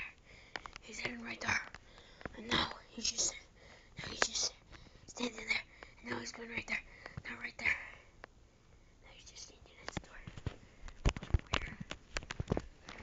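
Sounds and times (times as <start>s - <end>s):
person whispering: 0.0s - 0.2s, 0.8s - 8.1s, 9.0s - 10.4s, 11.5s - 11.9s.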